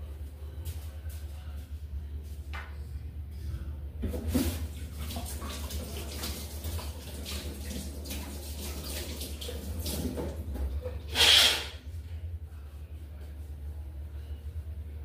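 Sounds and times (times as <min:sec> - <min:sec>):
water running in a sink: 0:04.0 - 0:11.8.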